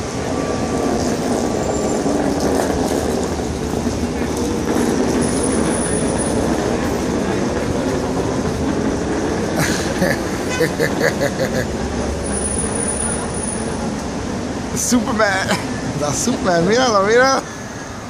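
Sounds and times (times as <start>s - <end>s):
cars driving past: 0.0s - 18.0s.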